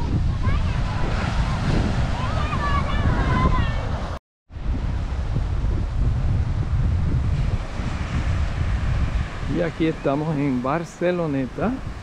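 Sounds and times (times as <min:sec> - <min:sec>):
ocean surf rushing: 0:00.0 - 0:12.0
wind buffeting microphone: 0:00.0 - 0:12.0.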